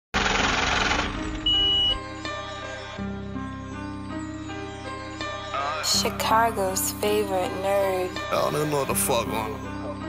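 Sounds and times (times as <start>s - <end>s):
high steady beep: 1.4s - 2.0s.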